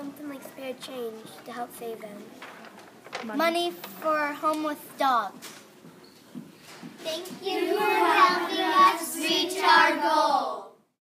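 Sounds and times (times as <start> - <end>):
children singing in unison: 7.4 - 10.8.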